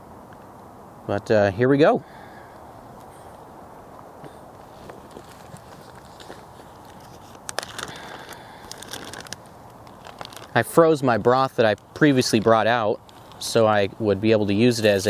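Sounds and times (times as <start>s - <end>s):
background hiss: 0.0s - 15.0s
plastic bag crinkling: 4.7s - 10.8s.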